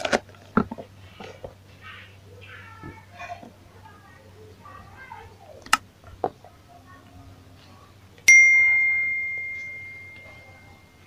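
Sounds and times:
bell ding ringing: 8.3s - 11.0s.

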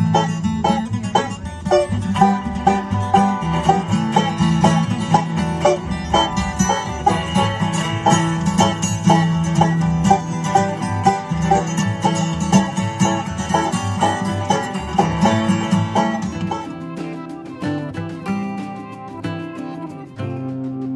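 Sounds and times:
banjo picking: 0.0s - 20.9s
plucked upright bass: 0.0s - 20.9s
strummed acoustic guitars: 0.0s - 20.9s.

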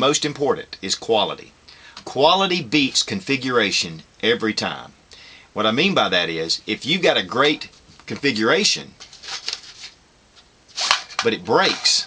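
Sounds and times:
magazine rubbing against fabric: 9.0s - 10.0s, 10.7s - 12.0s.

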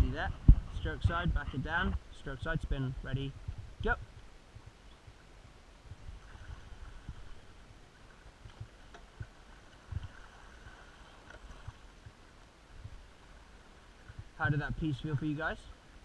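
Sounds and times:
oars splashing and swishing: 4.5s - 16.0s.

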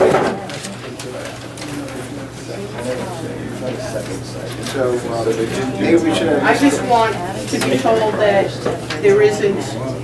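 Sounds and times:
people talking in low voices: 0.0s - 10.0s.

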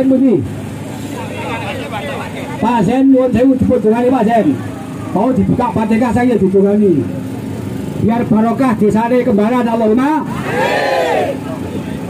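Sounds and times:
crowd voices: 0.8s - 3.0s, 4.2s - 6.0s, 10.2s - 12.0s.

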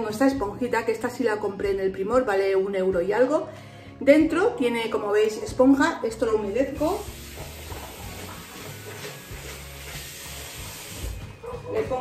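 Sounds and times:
quiet background music: 0.0s - 12.0s
tap water running: 6.7s - 11.3s.

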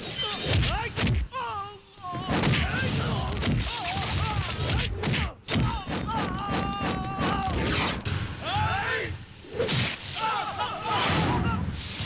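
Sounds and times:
voices yelling: 10.2s - 11.7s.

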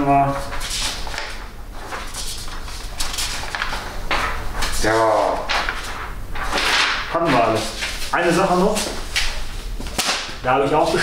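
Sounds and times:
paper rustling and crinkling: 0.2s - 11.0s.

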